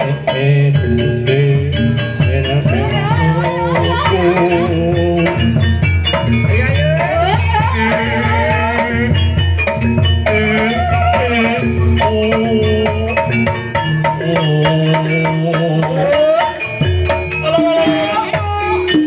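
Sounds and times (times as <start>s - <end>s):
person singing ornamented melody: 0.0s - 5.4s
hand drums beating: 0.0s - 19.0s
metallophone: 0.0s - 19.0s.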